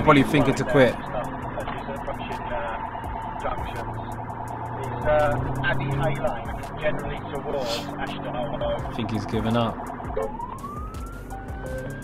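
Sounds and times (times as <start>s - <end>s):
man's voice: 0.0s - 2.8s, 3.4s - 4.0s, 4.8s - 10.4s
car engine and road noise: 0.0s - 12.0s.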